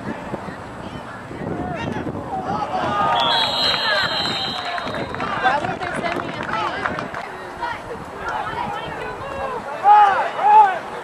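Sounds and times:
babble of overlapping voices: 0:00.0 - 0:11.0
people calling out: 0:02.4 - 0:05.5.

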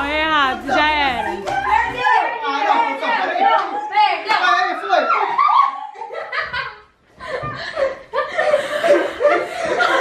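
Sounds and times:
people laughing: 0:05.1 - 0:10.0.

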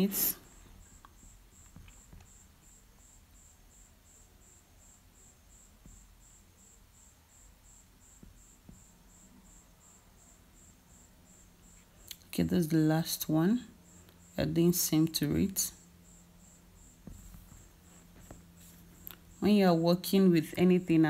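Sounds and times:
soft taps: 0:17.0 - 0:18.8.

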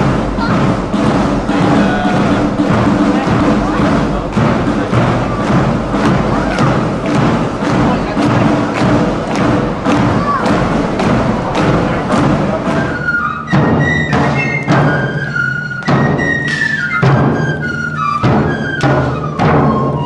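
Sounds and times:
fifes and side drums: 0:00.0 - 0:20.0
marching band music: 0:00.0 - 0:20.0.

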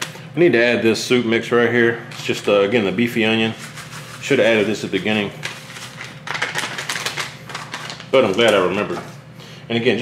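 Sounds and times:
soup mix shaken from paper packet: 0:03.5 - 0:08.4.

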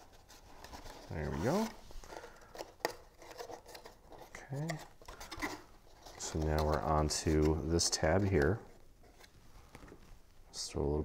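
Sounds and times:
cardstock rustling and crinkling: 0:00.0 - 0:10.1
person speaking: 0:01.0 - 0:01.9, 0:04.2 - 0:05.1, 0:06.0 - 0:08.8.

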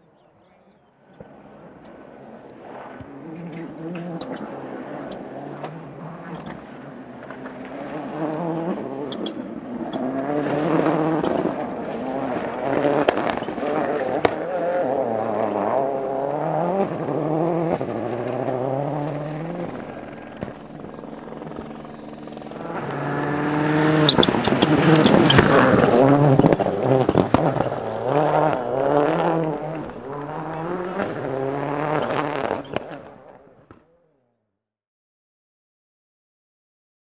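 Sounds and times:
rally car engine revving hard: 0:03.1 - 0:33.4.

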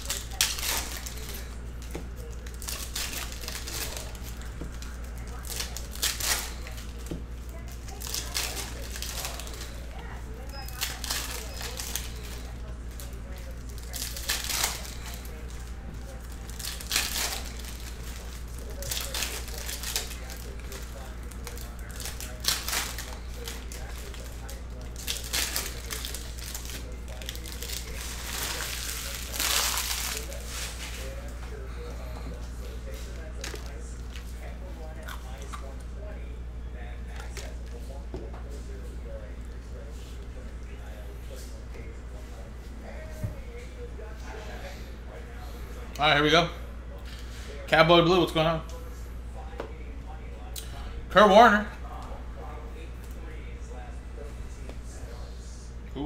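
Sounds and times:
foil wrappers crinkling: 0:00.0 - 0:35.8.

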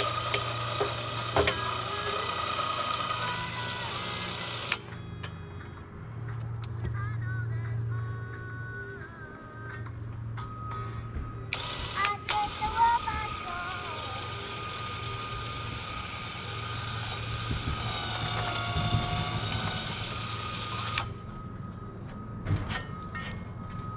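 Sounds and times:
atv engine running: 0:00.0 - 0:06.9, 0:11.5 - 0:21.8
mechanical whine and clatter: 0:00.0 - 0:07.2, 0:09.8 - 0:23.9.

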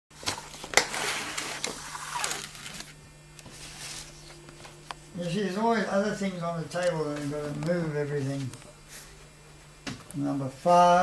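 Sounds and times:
low steady hum: 0:00.1 - 0:11.0
paper and cardboard sliding: 0:00.8 - 0:02.9, 0:03.5 - 0:04.3.

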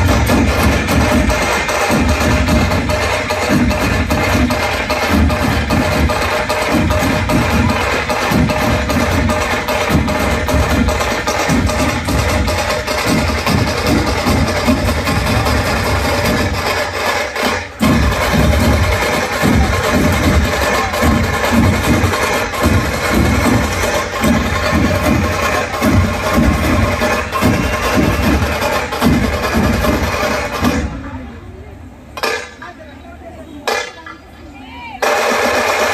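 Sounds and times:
barrel drums beaten with sticks: 0:00.0 - 0:31.2, 0:32.1 - 0:32.8.

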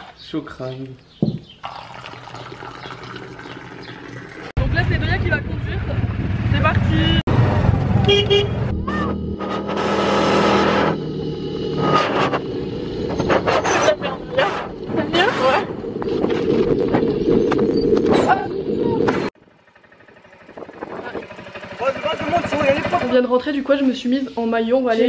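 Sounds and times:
off-road buggy engine rumble: 0:04.6 - 0:24.3.

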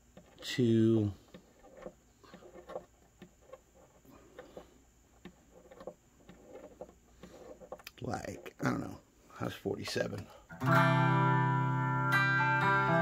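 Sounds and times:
knob clicks and handling noise: 0:00.0 - 0:08.6.

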